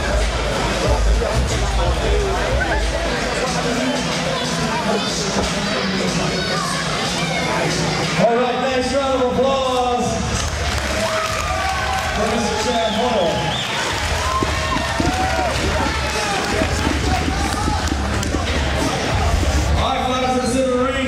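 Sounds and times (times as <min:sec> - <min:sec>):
crowd murmur: 0:00.0 - 0:21.0.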